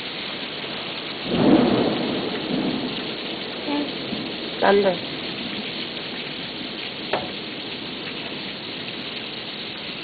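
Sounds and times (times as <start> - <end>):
heavy rain falling: 0.0 - 10.0.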